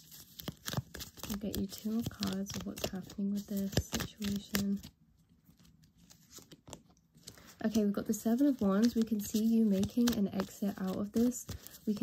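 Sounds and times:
cards rustling and clicking: 0.0 - 4.9, 5.5 - 12.0.

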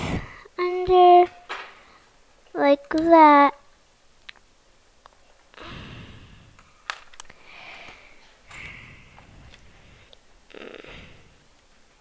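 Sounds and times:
person humming hmm: 10.5 - 11.3.

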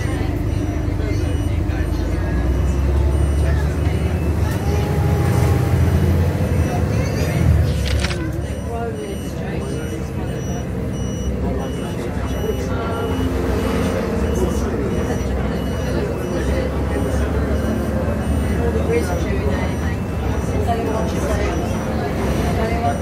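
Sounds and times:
bus engine and road rumble: 0.0 - 23.0
indistinct passenger voices: 0.0 - 23.0.

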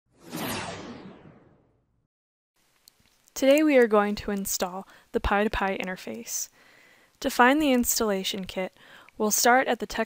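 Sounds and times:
whoosh sound effect: 0.1 - 1.8.

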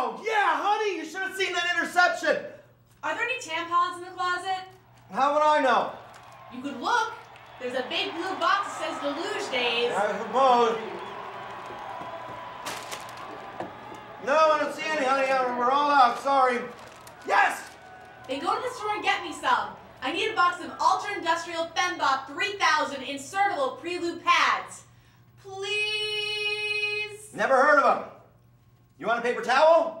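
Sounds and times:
faint crowd noise on television: 0.0 - 28.4
chip bag crinkling: 11.5 - 13.9, 16.0 - 20.1.

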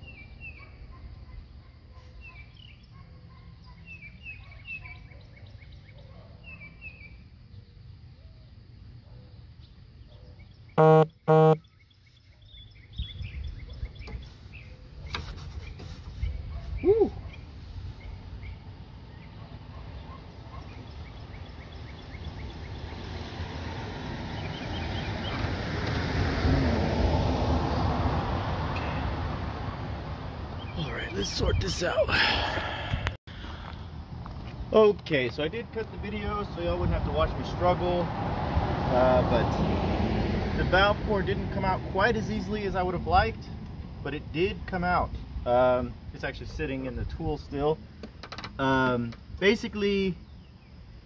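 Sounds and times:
small birds chirping: 0.0 - 23.1
man laughing: 31.2 - 33.0.

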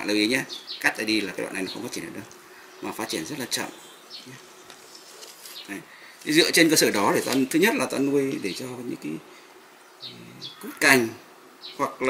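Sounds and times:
insect buzzing faintly: 0.0 - 12.0.

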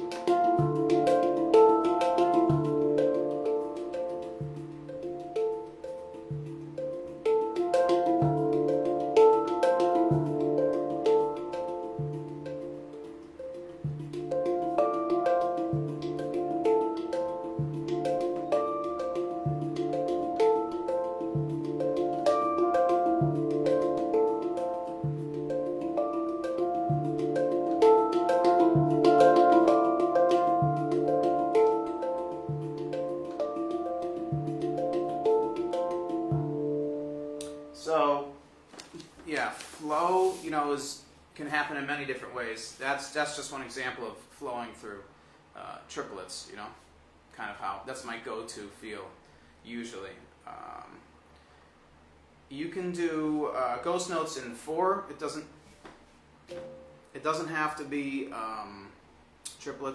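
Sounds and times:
handpan low bass note: 0.0 - 38.0
handpan ringing notes: 0.0 - 38.3, 56.5 - 57.6.

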